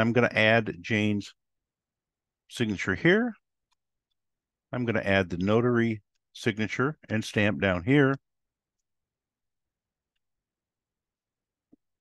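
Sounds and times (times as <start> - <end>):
man speaking: 0.0 - 1.4, 2.5 - 3.4, 4.7 - 8.3.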